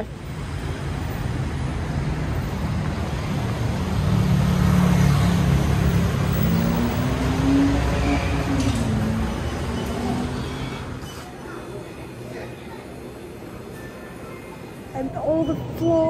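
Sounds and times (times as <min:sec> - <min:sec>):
city street noise: 0:00.0 - 0:16.0.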